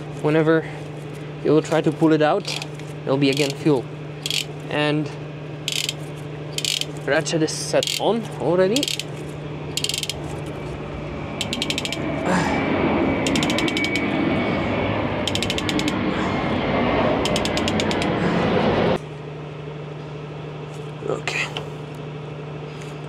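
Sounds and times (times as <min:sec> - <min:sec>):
ratchet clicking: 0:03.3 - 0:03.6, 0:04.2 - 0:04.5, 0:05.7 - 0:06.0, 0:06.6 - 0:07.0, 0:07.8 - 0:08.1, 0:08.8 - 0:09.1, 0:09.7 - 0:10.2, 0:11.4 - 0:12.0, 0:13.2 - 0:14.0, 0:15.3 - 0:16.0, 0:17.2 - 0:18.1
steady rushing noise: 0:09.5 - 0:19.0.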